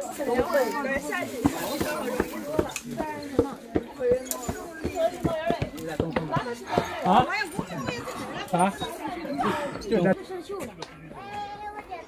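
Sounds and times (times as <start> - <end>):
voices in background: 0.0 - 12.0
footsteps on stone stairs: 0.3 - 8.2.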